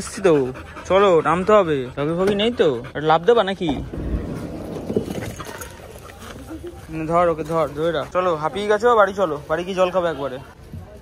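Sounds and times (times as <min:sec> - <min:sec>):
rustling and rumbling: 0:03.7 - 0:07.7.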